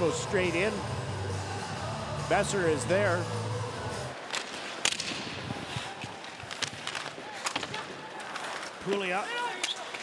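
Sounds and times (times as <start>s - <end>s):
crowd hum: 0.0s - 8.9s
hockey sticks and puck clacking: 4.1s - 10.0s.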